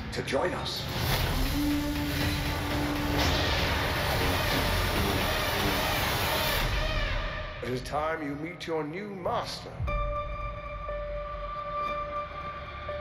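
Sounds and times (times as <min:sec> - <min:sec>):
trailer music: 0:00.0 - 0:08.4, 0:09.8 - 0:13.0.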